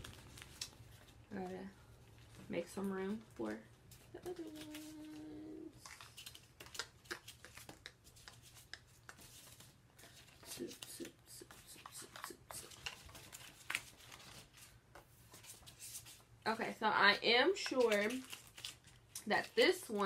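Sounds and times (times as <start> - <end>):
paper rustling and crinkling: 0.0 - 2.5, 3.9 - 16.3, 17.6 - 20.0
person humming: 4.2 - 5.8.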